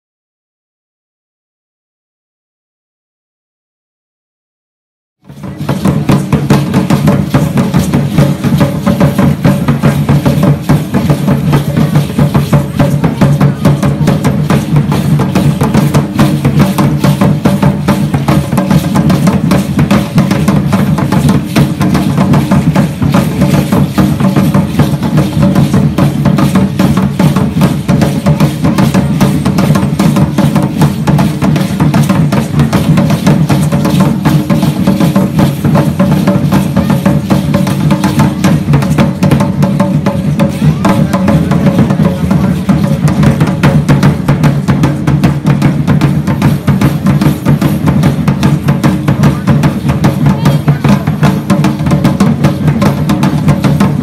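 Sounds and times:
large drums beating fast rhythm: 0:05.2 - 0:54.0.

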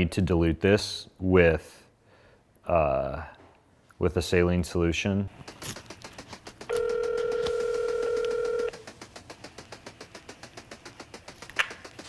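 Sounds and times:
telephone ringback tone: 0:06.7 - 0:08.7.

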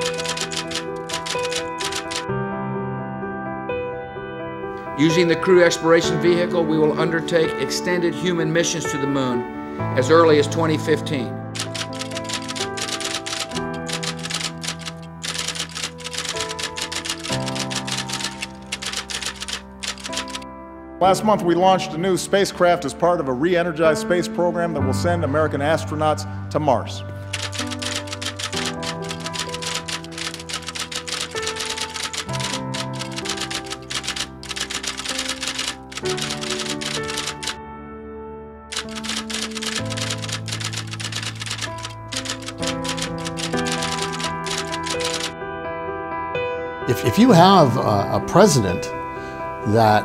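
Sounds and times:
typewriter keys clattering: 0:00.0 - 0:02.3, 0:11.6 - 0:20.4, 0:27.3 - 0:37.6, 0:38.7 - 0:45.3
background music chords: 0:00.0 - 0:50.0.

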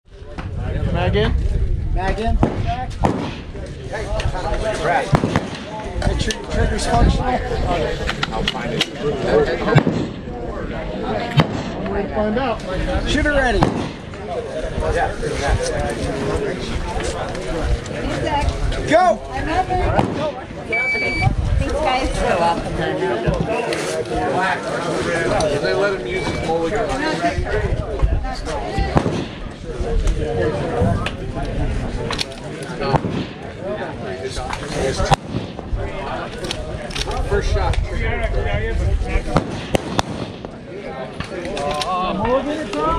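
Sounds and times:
low talk of voices: 0:00.1 - 0:42.9
sharp crack: 0:02.4 - 0:04.3, 0:05.0 - 0:06.5, 0:09.7 - 0:10.3, 0:11.2 - 0:12.0, 0:13.5 - 0:14.3, 0:19.9 - 0:20.5, 0:28.9 - 0:30.2, 0:32.1 - 0:33.6, 0:34.4 - 0:37.8, 0:39.3 - 0:42.8.

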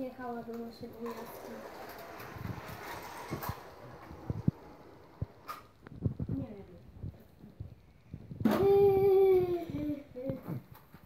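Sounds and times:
soft low thumps: 0:04.2 - 0:10.7.

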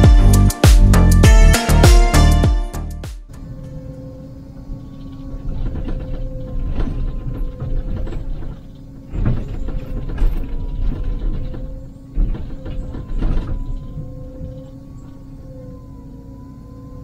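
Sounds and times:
excavator engine and hydraulics whine: 0:00.0 - 0:17.0.

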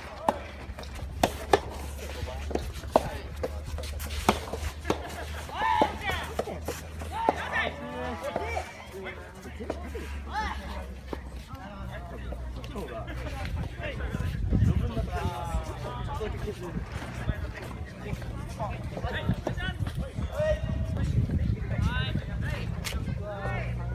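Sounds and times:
players shouting: 0:05.0 - 0:11.0.

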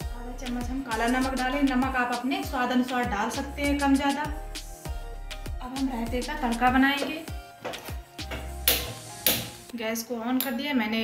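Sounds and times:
soft background music: 0:00.0 - 0:11.0
gas stove burner hissing: 0:08.3 - 0:09.7.

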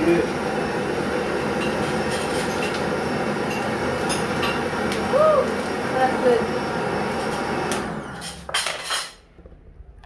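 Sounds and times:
blender motor running: 0:00.0 - 0:08.3.

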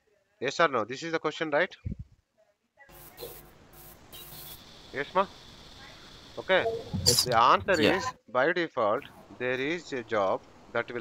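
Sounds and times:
open microphone hiss: 0:08.9 - 0:11.0.

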